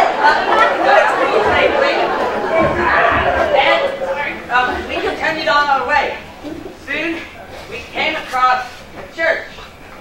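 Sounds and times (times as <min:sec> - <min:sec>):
several voices chattering: 0:00.0 - 0:10.0.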